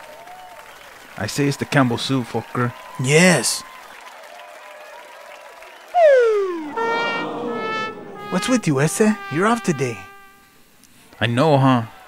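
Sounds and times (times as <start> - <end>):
audience applause: 0.0 - 9.2.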